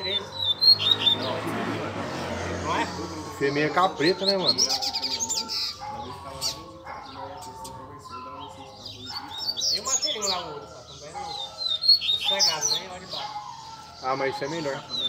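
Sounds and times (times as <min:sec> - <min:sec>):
birds chirping song: 0:00.0 - 0:15.0.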